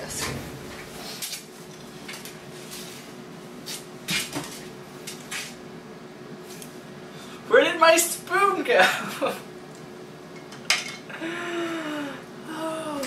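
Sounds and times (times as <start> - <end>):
faint steady hum: 0.0 - 13.0.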